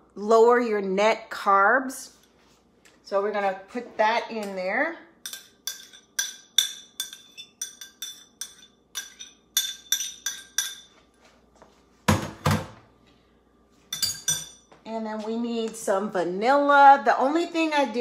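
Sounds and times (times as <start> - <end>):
metal utensil clinking steel bowl: 5.2 - 10.9, 13.9 - 14.6.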